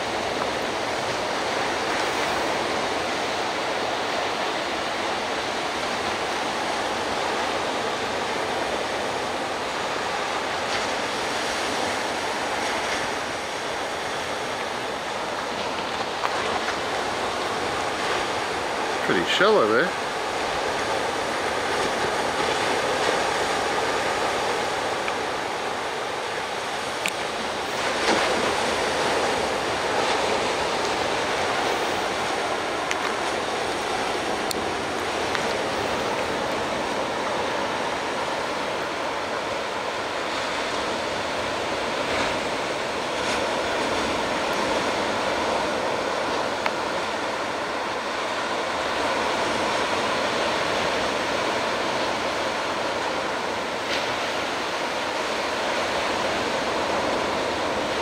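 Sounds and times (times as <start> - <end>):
ocean surf breaking on beach: 0.0 - 58.0.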